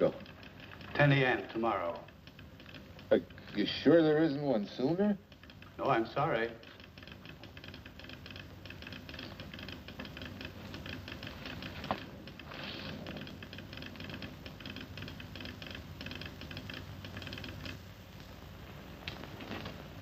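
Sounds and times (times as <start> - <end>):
telegraph sounder clicking: 0.0 - 20.0.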